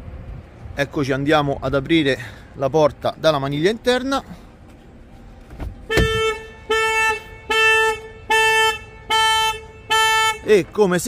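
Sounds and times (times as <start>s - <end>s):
car alarm blasts: 5.9s - 10.6s.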